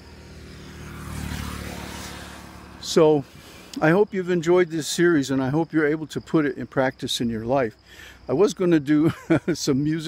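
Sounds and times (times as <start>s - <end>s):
motor scooter engine passing by: 0.0s - 3.0s.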